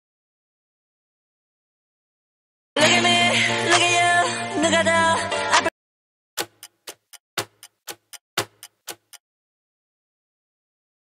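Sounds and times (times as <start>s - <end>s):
ticking clock: 6.4s - 9.2s.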